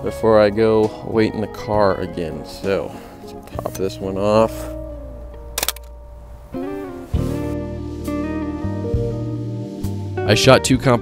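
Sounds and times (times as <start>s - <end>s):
guitar background music: 0.0s - 11.0s
camera shutter clack: 5.6s - 6.0s.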